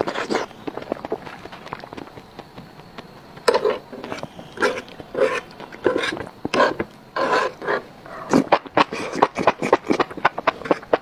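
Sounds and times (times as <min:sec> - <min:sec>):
wet chewing and sucking: 0:00.0 - 0:11.0.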